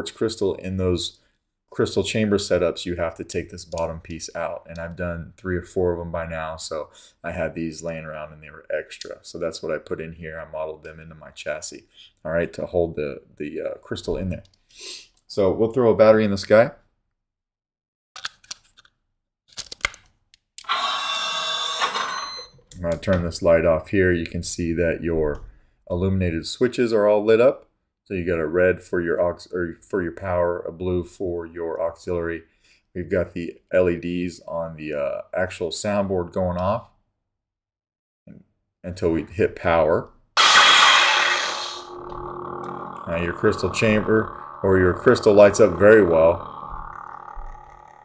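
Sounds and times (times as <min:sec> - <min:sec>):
lightsaber ignition burst: 0:40.4 - 0:46.6
electronic boot sound: 0:40.4 - 0:48.0
lightsaber humming: 0:40.4 - 0:48.0.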